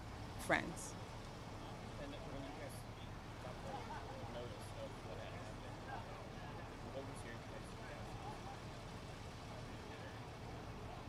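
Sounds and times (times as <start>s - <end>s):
faint distant voices: 0.0s - 11.0s
road traffic rumble: 0.0s - 11.0s.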